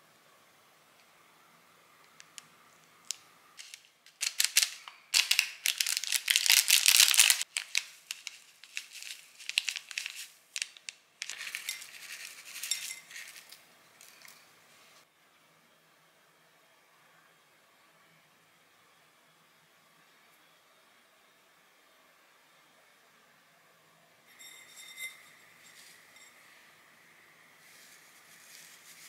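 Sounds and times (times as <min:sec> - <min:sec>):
plastic packet crinkling: 0:03.1 - 0:14.3.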